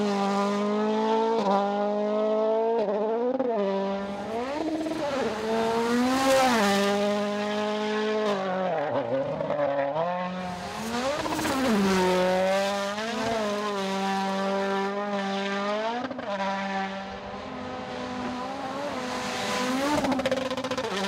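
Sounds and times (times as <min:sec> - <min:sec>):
rally car engine revving hard: 0:00.0 - 0:21.0.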